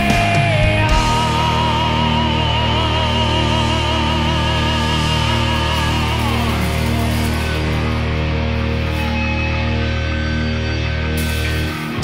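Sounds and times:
doom metal band playing: 0.0s - 12.0s.

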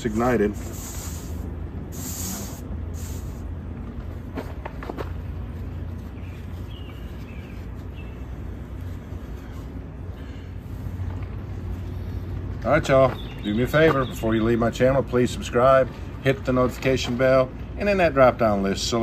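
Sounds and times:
low outdoor background hum: 0.0s - 19.0s.

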